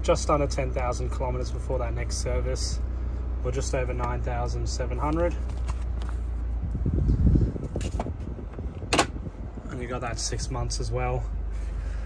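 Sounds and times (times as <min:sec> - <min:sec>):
diesel engine idling: 0:00.0 - 0:12.0
handling rumble: 0:00.0 - 0:12.0.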